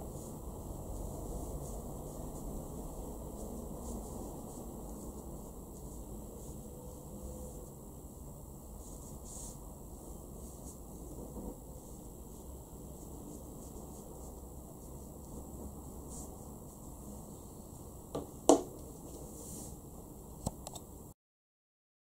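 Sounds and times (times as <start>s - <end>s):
faint room hiss: 0.0s - 21.2s.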